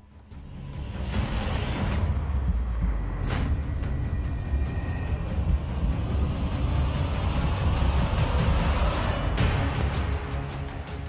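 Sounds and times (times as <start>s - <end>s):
deep rumble: 0.6s - 9.9s.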